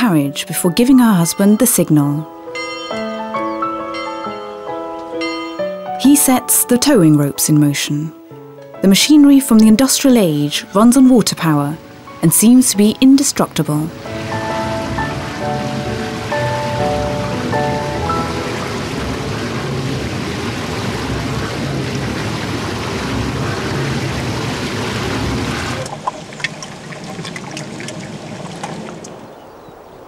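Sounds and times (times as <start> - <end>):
held music notes: 0.0 - 26.2
water rushing through water wheel: 10.8 - 29.5
outdoor ambience: 13.4 - 30.0.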